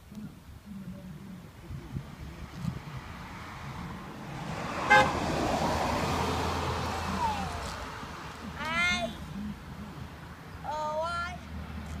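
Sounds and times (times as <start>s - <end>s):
vehicle engine and road noise: 0.0s - 12.0s
vehicle horn toot: 4.9s - 5.2s.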